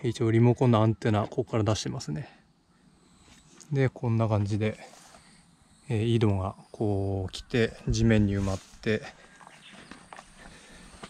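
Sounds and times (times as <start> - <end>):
footsteps on sandy soil and grass: 7.8 - 11.0.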